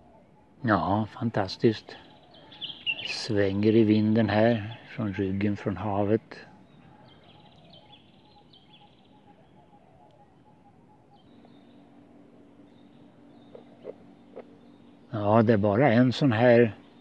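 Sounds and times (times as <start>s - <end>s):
low steady hum: 0.0s - 17.0s.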